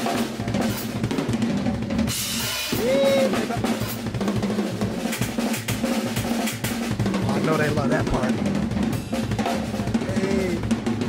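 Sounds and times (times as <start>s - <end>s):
snare and bass drum fills: 0.0s - 11.0s.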